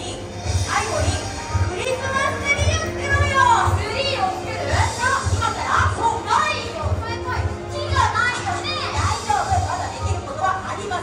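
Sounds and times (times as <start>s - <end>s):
children calling out and shouting: 0.7s - 11.0s.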